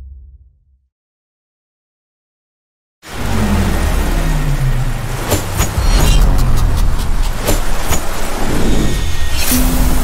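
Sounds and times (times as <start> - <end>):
deep rumbling drone: 3.1 - 10.0.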